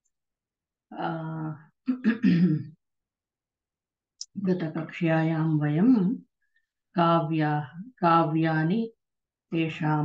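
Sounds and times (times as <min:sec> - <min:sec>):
person clearing throat: 0:01.9 - 0:02.7.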